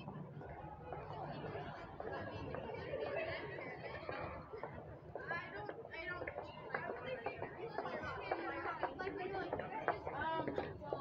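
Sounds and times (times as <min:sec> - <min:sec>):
people chattering: 0:00.0 - 0:11.0
street noise: 0:00.0 - 0:11.0.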